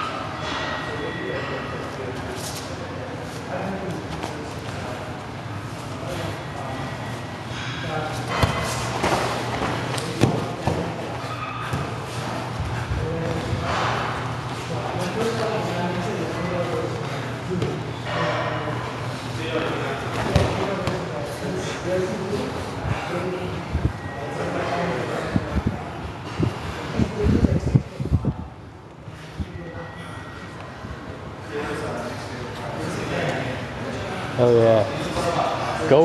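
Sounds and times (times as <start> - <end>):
indistinct background talk: 0.0 - 36.0.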